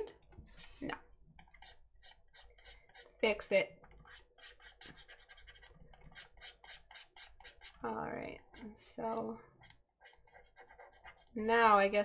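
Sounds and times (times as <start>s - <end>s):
stylus scratching on tablet: 0.3s - 12.0s.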